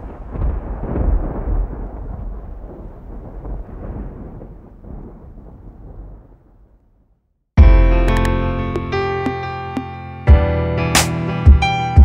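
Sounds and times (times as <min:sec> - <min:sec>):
deep crackling rumble: 0:00.0 - 0:07.2.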